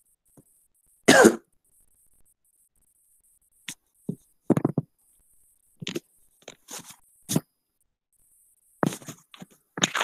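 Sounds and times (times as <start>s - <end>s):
person coughing: 1.1s - 1.4s.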